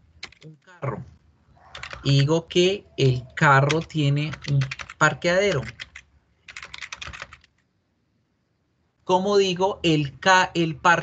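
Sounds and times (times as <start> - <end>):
keyboard keys clicking: 0.2 - 0.5, 1.7 - 2.4, 3.6 - 7.6.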